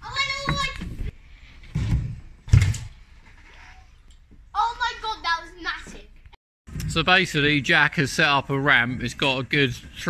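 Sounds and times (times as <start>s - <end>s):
bike landing thump: 1.7s - 3.0s.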